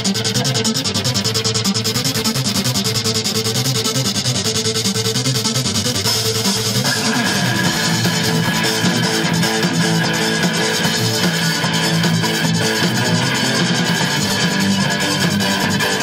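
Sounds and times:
rock band playing: 0.0 - 16.0
fast drum strokes: 5.4 - 16.0.

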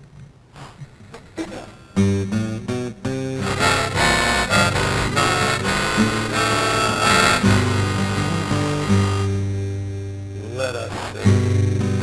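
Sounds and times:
acoustic guitar strumming: 2.0 - 10.4, 11.2 - 12.0.

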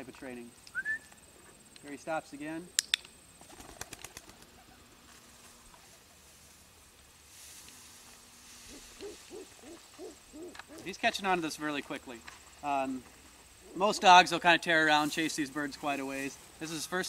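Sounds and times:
pigeon wings flapping: 3.4 - 4.7
soft low hoots: 8.5 - 11.0.

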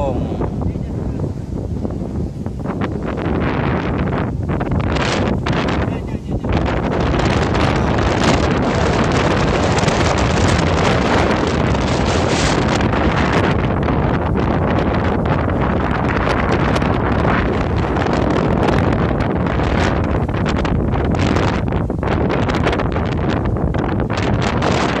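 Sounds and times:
strong wind on microphone: 0.0 - 25.0.

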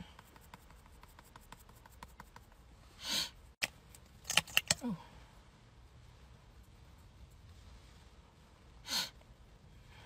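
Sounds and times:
sharp plastic clicks: 3.6 - 4.8.

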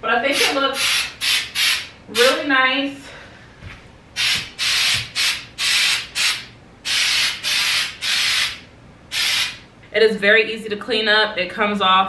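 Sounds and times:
aerosol spray hissing: 0.4 - 2.3, 4.2 - 9.6.

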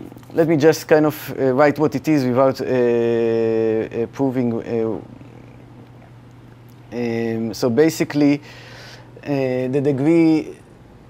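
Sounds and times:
low hum with faint hiss: 0.0 - 11.0.

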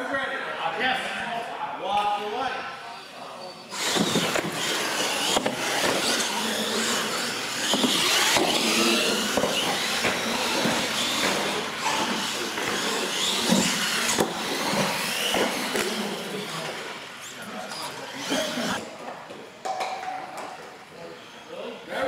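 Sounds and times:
toy truck motor and gear whine: 3.7 - 18.8.

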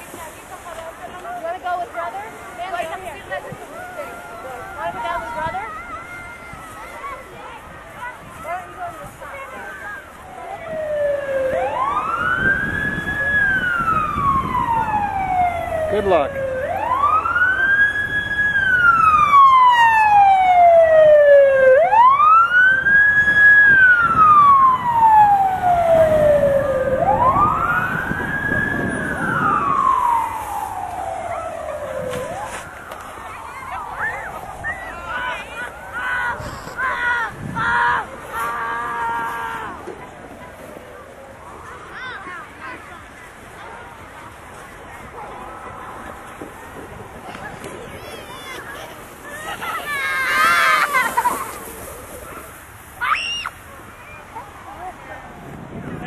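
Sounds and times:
distant children calling and shouting: 1.2 - 15.8, 29.0 - 56.0
fire engine siren wailing: 10.0 - 36.1.

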